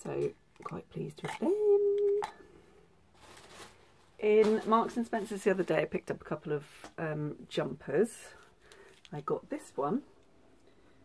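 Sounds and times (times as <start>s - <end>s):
woman's voice: 0.0s - 2.4s, 4.2s - 8.4s, 9.1s - 10.1s.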